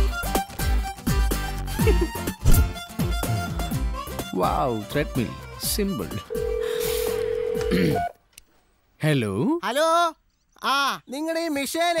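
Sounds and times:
telephone line tone: 0:06.3 - 0:08.1.

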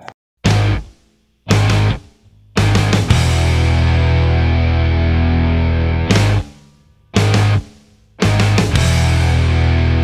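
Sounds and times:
heavy rock guitar riffs: 0:00.4 - 0:10.0.

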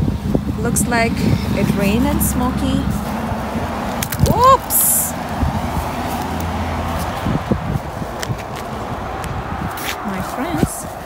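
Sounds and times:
low engine hum: 0:00.0 - 0:11.0
traffic noise: 0:00.0 - 0:11.0.

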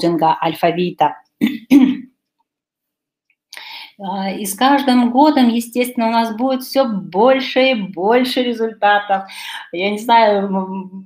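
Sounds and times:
woman clearing her throat: 0:01.4 - 0:02.1.

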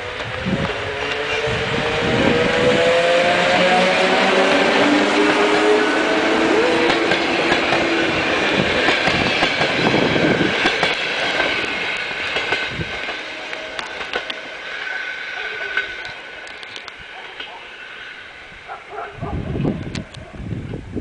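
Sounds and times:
train wheels rushing on rails: 0:00.0 - 0:20.9.

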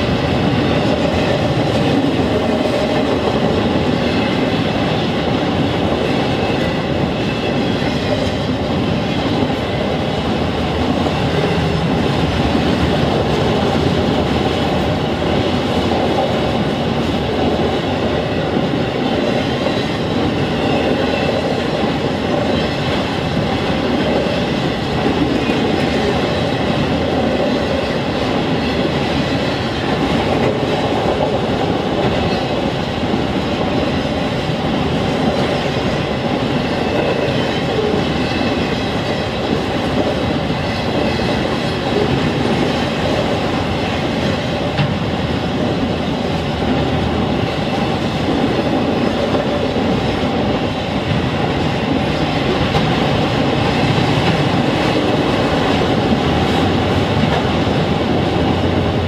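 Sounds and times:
train wheels running on rails: 0:00.0 - 0:59.0.

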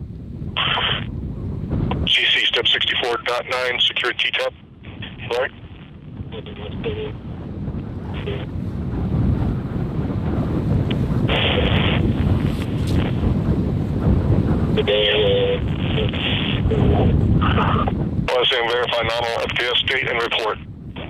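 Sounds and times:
wind noise on microphone: 0:00.0 - 0:21.0
radio noise bursts: 0:00.6 - 0:01.1, 0:01.9 - 0:07.2, 0:08.1 - 0:08.5, 0:11.3 - 0:12.2, 0:14.7 - 0:21.0.

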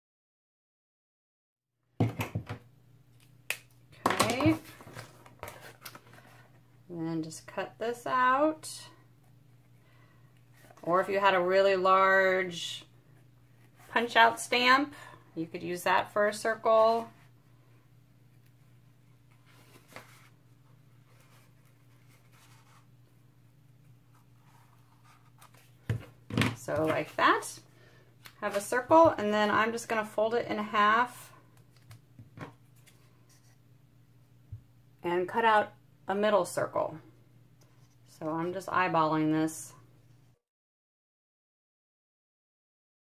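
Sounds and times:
faint steady hum: 0:02.2 - 0:40.4.

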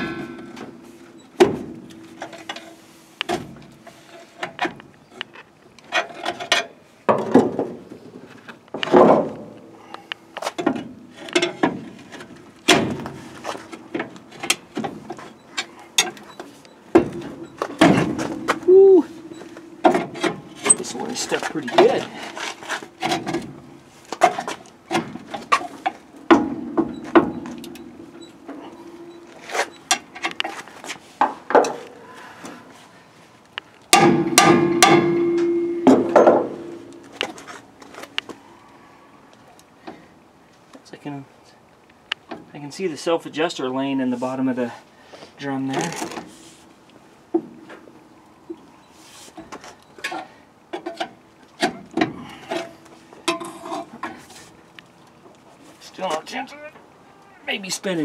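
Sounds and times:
metal knocks and clanks: 0:00.0 - 0:03.8, 0:08.7 - 0:09.6, 0:10.6 - 0:30.5, 0:33.9 - 0:37.5.

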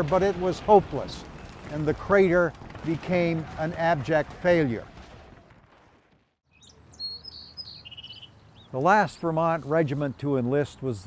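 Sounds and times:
small birds chirping: 0:06.5 - 0:11.0.

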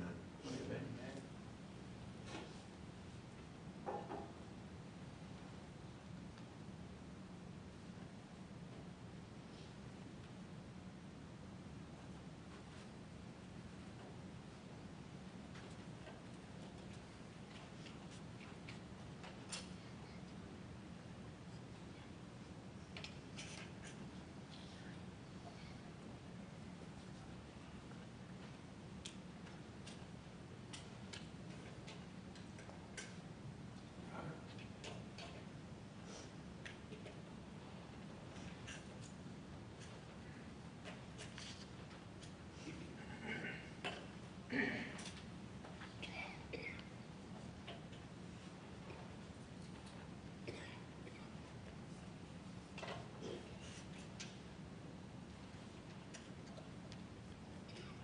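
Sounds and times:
low room hum: 0:00.0 - 0:58.0.

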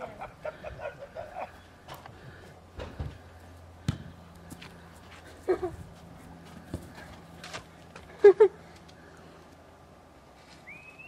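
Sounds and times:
person laughing: 0:00.0 - 0:01.7, 0:05.3 - 0:05.9, 0:08.1 - 0:08.7
football thumps on grass: 0:03.8 - 0:04.7, 0:06.5 - 0:07.6.

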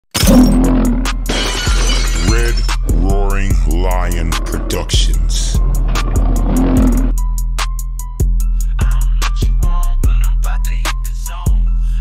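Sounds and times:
glass shattering: 0:00.1 - 0:02.8
deep bass music: 0:00.2 - 0:01.3, 0:02.2 - 0:12.0.

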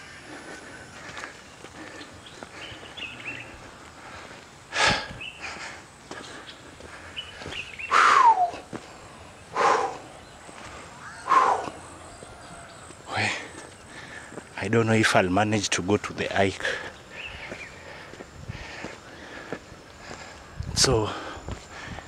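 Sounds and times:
person breathing hard: 0:00.0 - 0:12.0, 0:13.1 - 0:14.5, 0:16.6 - 0:22.0
voiced sigh: 0:07.9 - 0:10.2.

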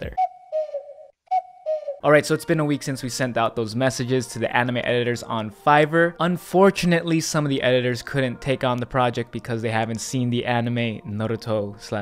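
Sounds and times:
cuckoo call: 0:00.0 - 0:02.1.

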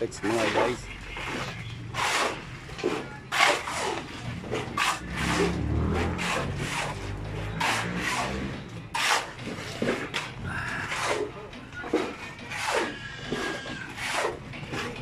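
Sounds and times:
shovel and hoe scraping wet concrete: 0:00.2 - 0:15.0.

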